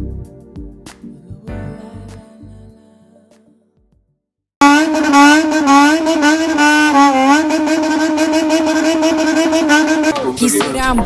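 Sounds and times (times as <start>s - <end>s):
motorcycle engine revving: 4.6s - 10.4s.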